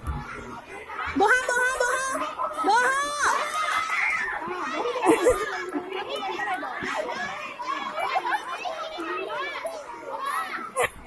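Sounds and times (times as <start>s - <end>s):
children talking and shouting: 0.0s - 11.0s.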